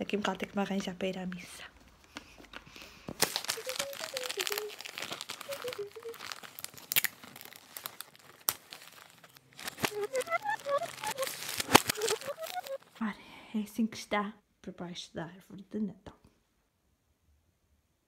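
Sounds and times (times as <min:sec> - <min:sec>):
wrapping paper crinkling: 0:02.1 - 0:13.0.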